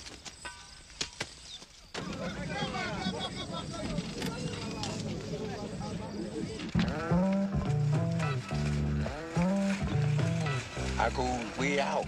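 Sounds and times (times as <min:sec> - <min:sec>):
indistinct voices: 0:02.0 - 0:12.0
music with bass and sliding melody: 0:06.8 - 0:12.0.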